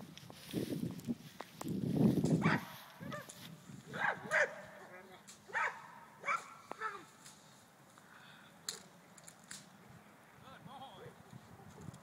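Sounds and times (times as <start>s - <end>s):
dog barking: 2.4s - 3.3s, 3.9s - 4.7s, 5.5s - 7.0s.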